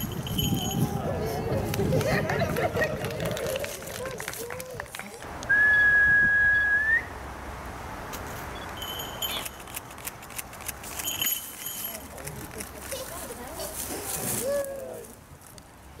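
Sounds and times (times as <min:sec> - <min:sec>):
long whistled note: 0:05.5 - 0:07.1.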